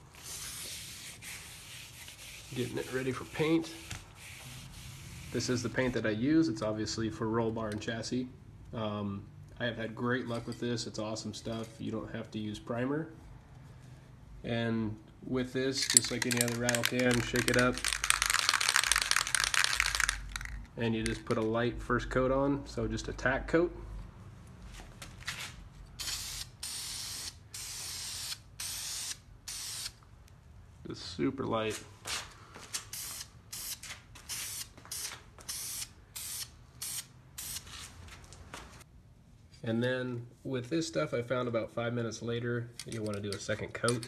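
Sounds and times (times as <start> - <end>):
spray paint can hissing: 0.1 - 3.2, 16.1 - 20.5, 26.0 - 30.0, 32.8 - 37.7
spray paint can rattling: 15.8 - 21.4.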